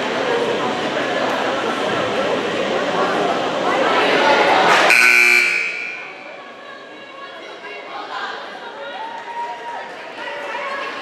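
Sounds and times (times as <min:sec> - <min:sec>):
crowd chatter: 0:00.0 - 0:11.0
scoreboard buzzer: 0:04.8 - 0:06.4.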